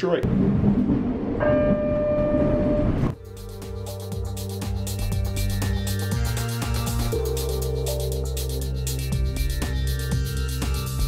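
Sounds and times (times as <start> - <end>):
background music with steady beat: 3.2 - 11.0.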